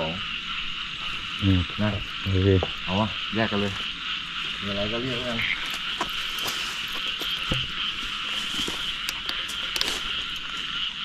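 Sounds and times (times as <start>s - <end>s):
frogs calling: 0.0s - 11.0s.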